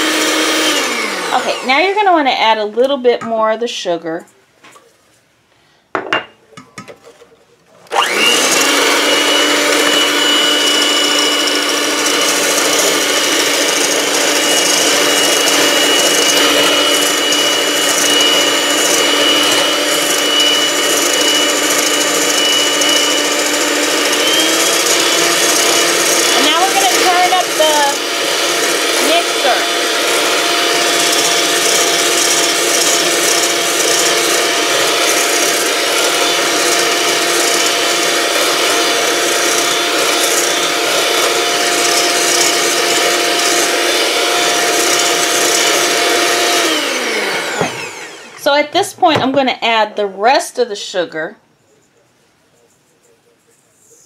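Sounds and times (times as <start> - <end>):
electric hand mixer whipping: 0.0 - 2.4, 7.8 - 49.4.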